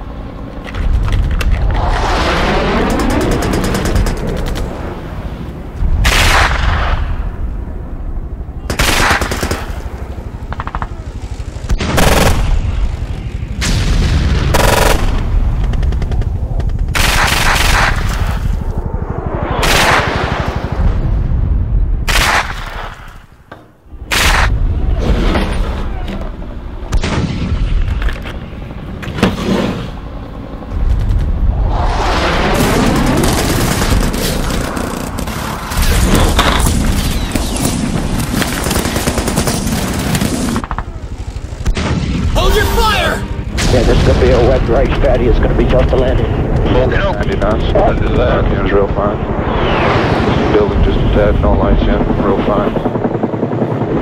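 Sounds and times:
machine-gun fire: 0:08.7 - 0:09.8, 0:11.7 - 0:12.7, 0:14.0 - 0:18.4, 0:32.5 - 0:40.8
booms: 0:43.5 - 0:52.6.

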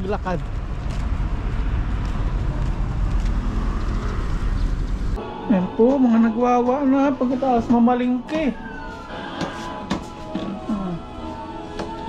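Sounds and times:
city traffic rumble: 0:00.0 - 0:08.1.

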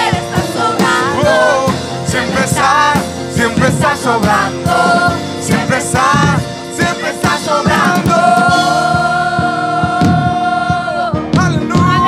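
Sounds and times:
keyboard: 0:00.0 - 0:12.0
steady beat: 0:00.0 - 0:12.0.

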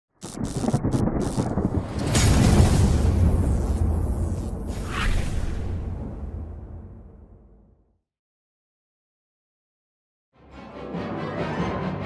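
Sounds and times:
deep thunder rumble: 0:00.3 - 0:04.8.

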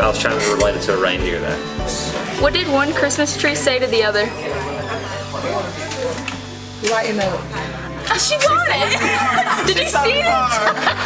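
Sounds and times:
music with held bass notes: 0:00.0 - 0:06.7, 0:07.5 - 0:11.0.

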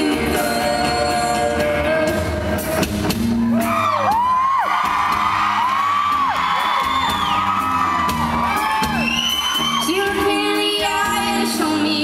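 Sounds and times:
live rock band playing: 0:00.0 - 0:12.0
audience whooping: 0:03.4 - 0:10.5.

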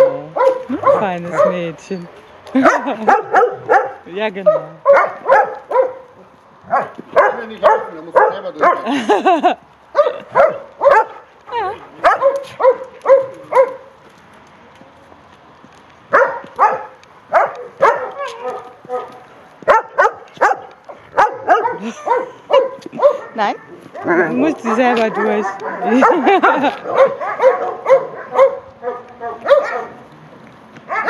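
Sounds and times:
dogs barking: 0:00.0 - 0:01.8, 0:02.6 - 0:14.0, 0:16.1 - 0:30.1.

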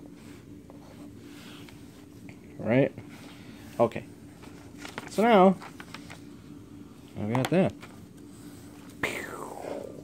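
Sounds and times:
man whispering pew sound: 0:09.0 - 0:10.0.

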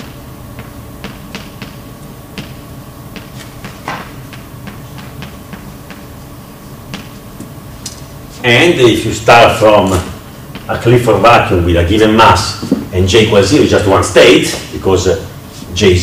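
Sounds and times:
faint room hum: 0:00.0 - 0:16.0.

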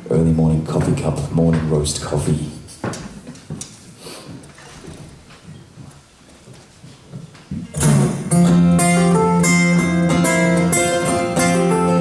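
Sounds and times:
acoustic guitars strumming: 0:07.7 - 0:12.0.

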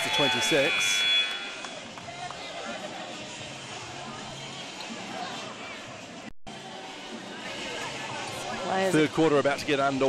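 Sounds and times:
steady high tone: 0:00.0 - 0:01.9
murmur of indoor crowd: 0:00.0 - 0:10.0.

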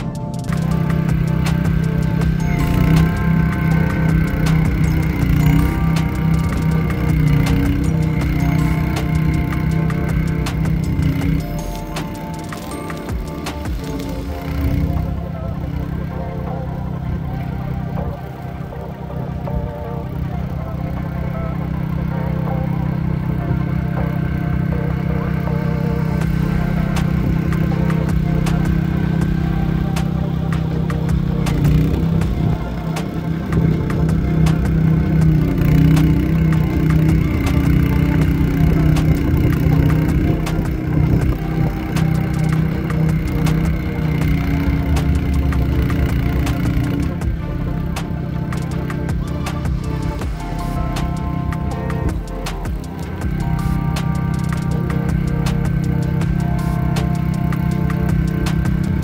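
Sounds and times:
background music: 0:00.0 - 0:59.0
snowblower engine running: 0:00.0 - 0:59.0.

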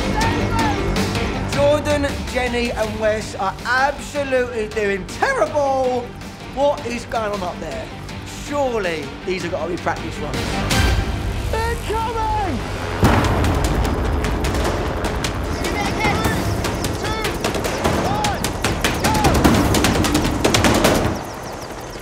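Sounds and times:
people shouting: 0:00.0 - 0:01.2, 0:15.5 - 0:20.9
helicopter rotor and engine: 0:00.0 - 0:22.0.

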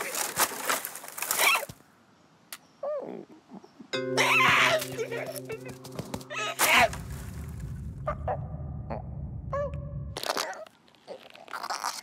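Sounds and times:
leaves rustling: 0:00.0 - 0:01.8, 0:04.7 - 0:08.0.

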